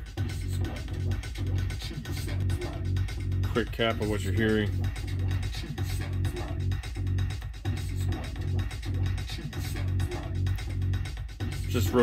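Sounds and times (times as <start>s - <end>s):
electronic beat with heavy bass: 0.0s - 12.0s.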